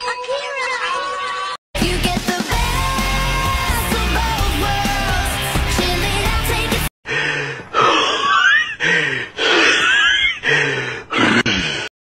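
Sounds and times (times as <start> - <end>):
person breathing wheezily: 7.0 - 11.9.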